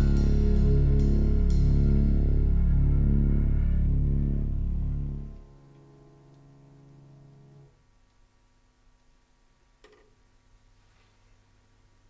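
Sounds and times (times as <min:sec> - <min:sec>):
pop ballad closing chord: 0:00.0 - 0:04.0
deep sustained bass: 0:00.0 - 0:07.6.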